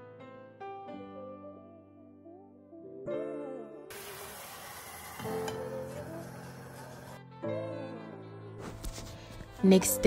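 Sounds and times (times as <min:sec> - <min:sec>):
soft background music: 0:00.0 - 0:10.0
sauce sizzling in a frying pan: 0:03.9 - 0:07.2.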